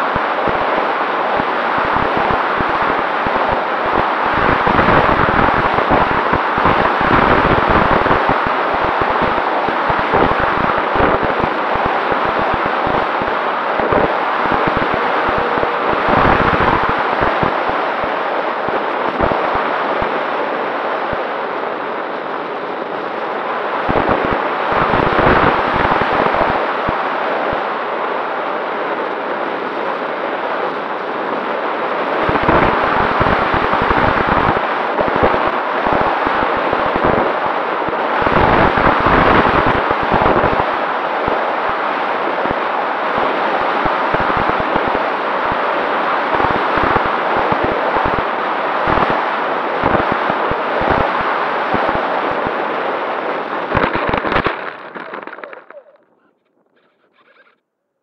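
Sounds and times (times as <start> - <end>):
electric fan tone: 0.0 - 57.5.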